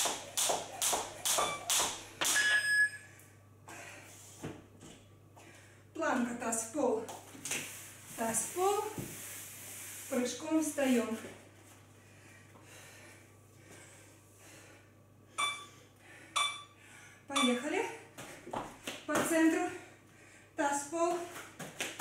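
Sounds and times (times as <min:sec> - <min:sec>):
woman's voice: 0:06.0 - 0:07.1, 0:08.2 - 0:09.0, 0:10.1 - 0:11.3, 0:17.3 - 0:18.1, 0:19.1 - 0:19.9, 0:20.6 - 0:21.3
short electronic beeps: 0:15.4 - 0:15.8, 0:16.4 - 0:16.8, 0:17.4 - 0:17.7.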